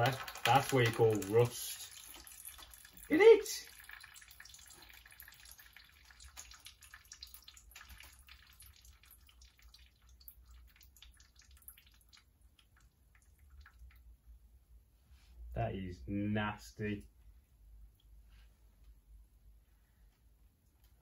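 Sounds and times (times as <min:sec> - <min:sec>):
water dripping into pan: 0:00.0 - 0:14.2.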